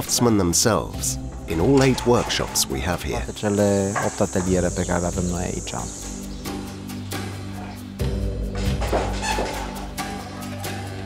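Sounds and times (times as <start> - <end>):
person speaking: 0.0 - 6.0.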